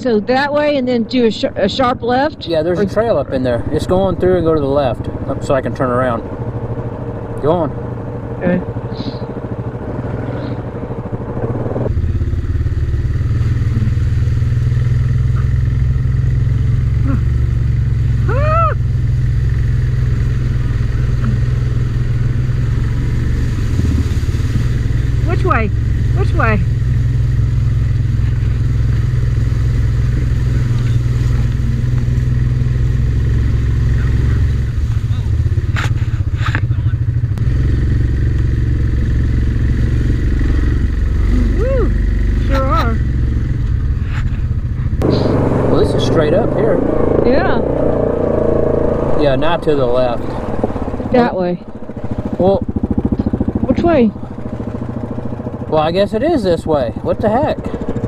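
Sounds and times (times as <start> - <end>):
atv engine running: 0.0 - 58.0.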